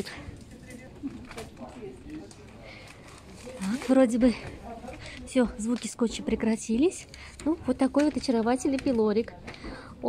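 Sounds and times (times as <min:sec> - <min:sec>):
quiet background voices: 0:00.0 - 0:10.0.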